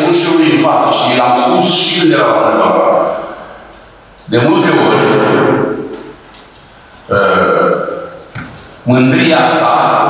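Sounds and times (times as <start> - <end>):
man's drawn-out hesitation sound: 7.1 - 8.2.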